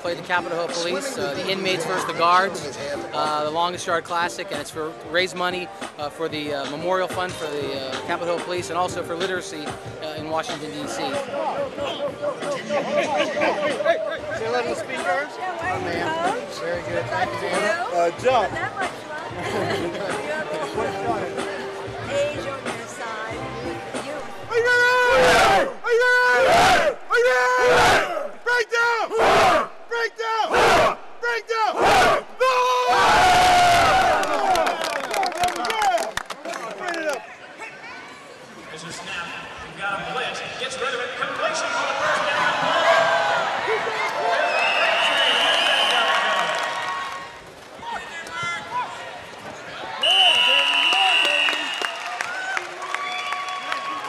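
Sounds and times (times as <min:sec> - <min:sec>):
crowd noise: 0:00.0 - 0:54.0
people shouting: 0:24.5 - 0:34.7.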